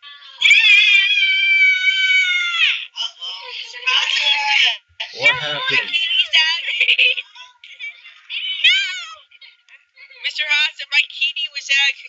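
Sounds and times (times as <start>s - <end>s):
cat yowling: 0.5s - 2.7s, 5.2s - 5.9s
short voice sounds: 5.2s - 5.9s.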